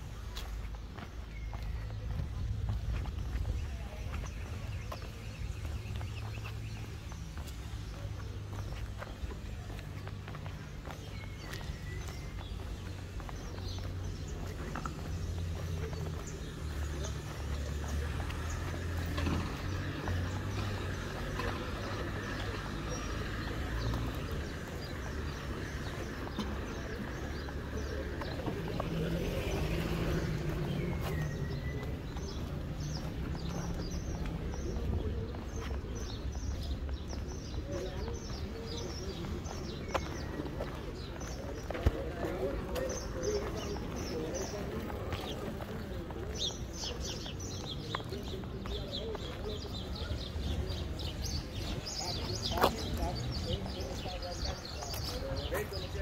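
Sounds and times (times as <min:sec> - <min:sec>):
low rumble of traffic: 0:00.0 - 0:56.0.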